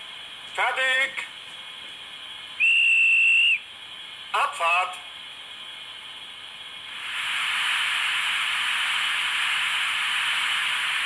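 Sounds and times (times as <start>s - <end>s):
background hiss: 0.0s - 11.0s
dispatcher's whistle blast: 2.6s - 3.7s.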